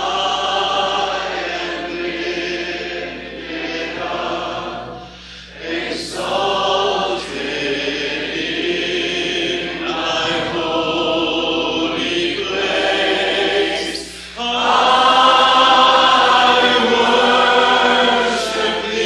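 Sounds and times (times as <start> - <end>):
choir singing a worship song: 0.0 - 19.0.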